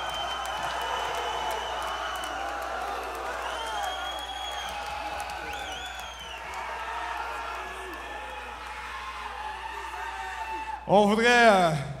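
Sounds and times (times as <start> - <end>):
whistle: 0.0 - 2.4, 3.4 - 6.6
concert audience cheering: 0.0 - 11.6.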